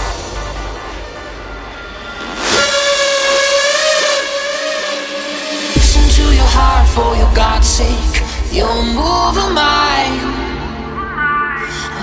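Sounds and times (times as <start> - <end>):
held synthesizer note: 0.0 - 11.2.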